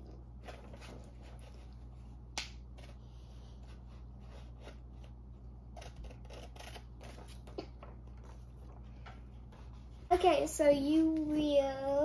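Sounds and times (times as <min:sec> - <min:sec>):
low steady hum: 0:00.0 - 0:12.0
scissors cutting paper: 0:03.7 - 0:07.8.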